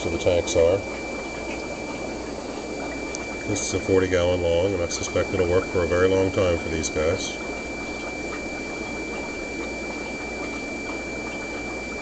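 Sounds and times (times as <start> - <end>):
aquarium filter bubbling: 0.0 - 12.0.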